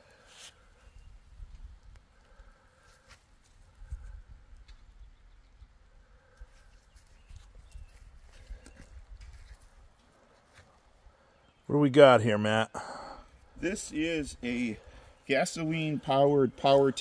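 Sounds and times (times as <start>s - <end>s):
wind rumble on microphone: 3.7s - 5.8s.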